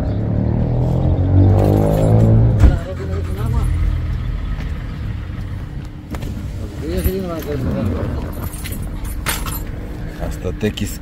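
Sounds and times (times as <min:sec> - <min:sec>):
metal keys jingling: 0:01.6 - 0:02.4, 0:08.1 - 0:09.8.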